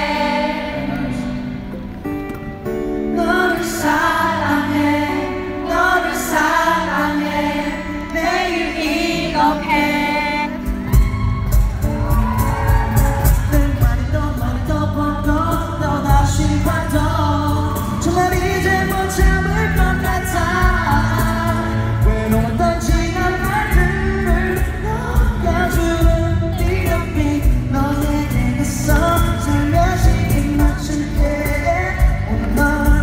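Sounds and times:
acoustic guitar: 0:00.0 - 0:33.0
drums: 0:10.5 - 0:33.0
man singing: 0:13.0 - 0:33.0.

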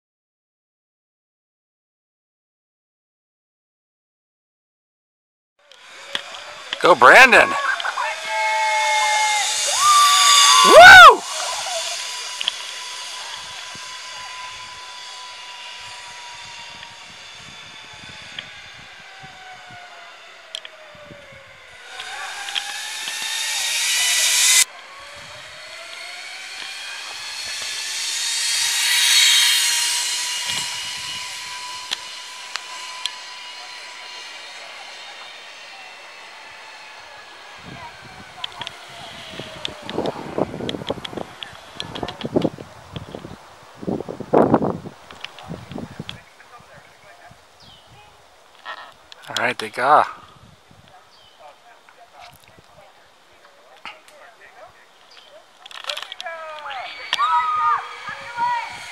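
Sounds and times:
zip line pulleys whirring on cable: 0:05.6 - 0:58.9.

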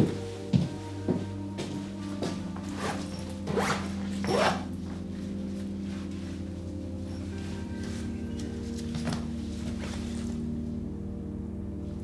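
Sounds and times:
quiet music with low tones: 0:00.0 - 0:12.0
zipper on backpack: 0:02.8 - 0:04.7.

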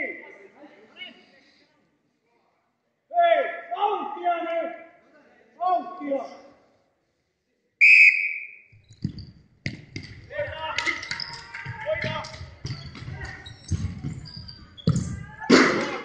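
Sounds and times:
referee's whistle: 0:07.8 - 0:08.7
ball thudding on wooden floor: 0:08.8 - 0:15.6
players calling out: 0:09.8 - 0:16.0.

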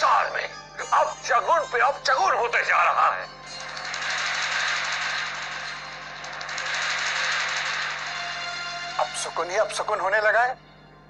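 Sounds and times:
fast rattling drum roll: 0:03.6 - 0:09.2.

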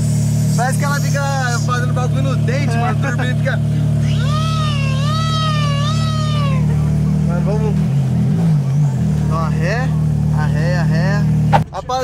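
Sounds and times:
car engine idling: 0:00.0 - 0:12.0
person squealing high-pitched: 0:04.0 - 0:07.1.

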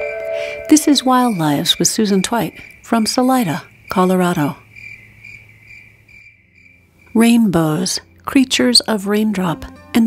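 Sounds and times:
insect short chirps: 0:00.0 - 0:04.0, 0:04.6 - 0:07.2
insect high trill: 0:00.0 - 0:08.2.

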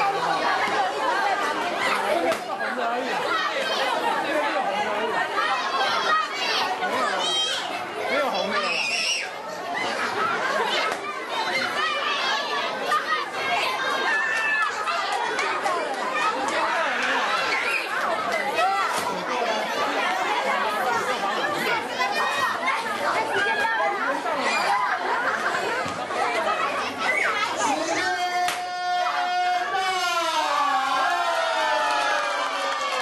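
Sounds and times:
children chattering and shouting: 0:00.0 - 0:33.0.

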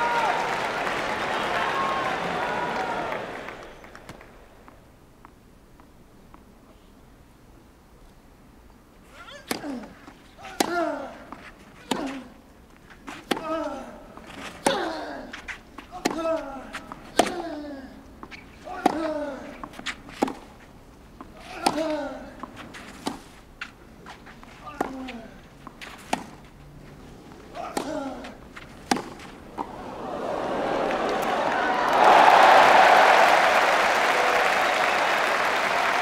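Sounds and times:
racket striking tennis ball: 0:09.4 - 0:12.3, 0:13.0 - 0:17.5, 0:18.2 - 0:20.5, 0:21.2 - 0:23.4, 0:24.7 - 0:26.4, 0:27.5 - 0:29.8.

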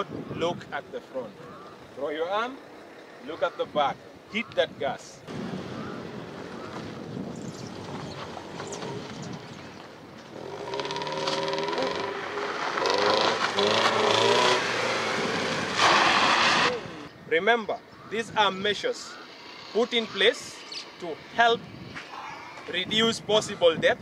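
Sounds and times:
tyres sliding on gravel: 0:07.7 - 0:16.8
car engine revving: 0:10.3 - 0:17.1.

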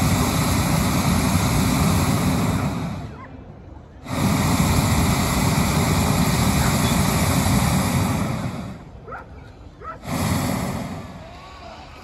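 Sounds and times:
propane burner blast: 0:00.0 - 0:03.2, 0:03.9 - 0:09.0, 0:10.0 - 0:12.0.

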